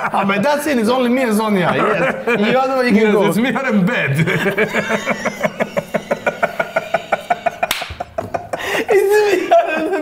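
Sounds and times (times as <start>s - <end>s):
men laughing hard: 1.6s - 10.0s.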